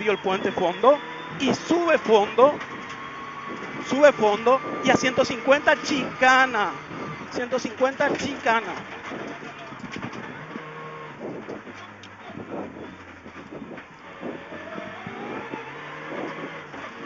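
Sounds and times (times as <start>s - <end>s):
tyres on gravel: 0.0s - 15.1s
car engine revving through gears: 0.0s - 17.0s.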